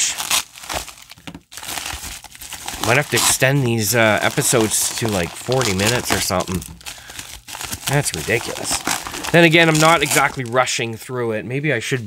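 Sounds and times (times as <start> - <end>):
bubble mailer crinkling: 0.0 - 10.7.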